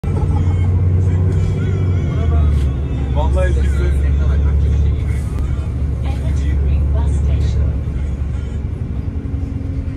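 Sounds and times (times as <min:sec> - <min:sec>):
bus engine low drone: 0:00.0 - 0:09.9
faint passenger voices: 0:00.0 - 0:09.9.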